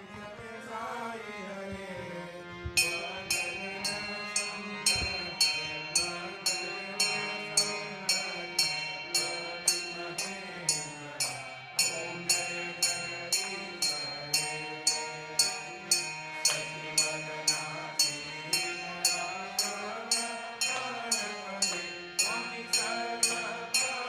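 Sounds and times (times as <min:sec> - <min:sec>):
sustained slow melody: 0:00.0 - 0:24.0
ringing metal bell struck: 0:02.8 - 0:24.0.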